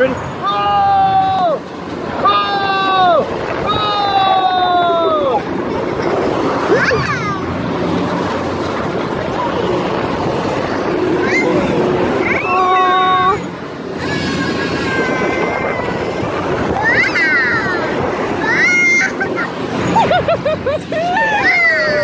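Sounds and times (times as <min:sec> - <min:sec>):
distant voices: 0:00.0 - 0:22.0
steady rush of noise: 0:00.0 - 0:22.0.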